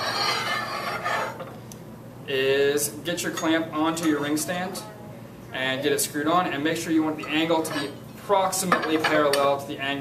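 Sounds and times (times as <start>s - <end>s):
metal stand scraping on bench: 0.0s - 1.6s.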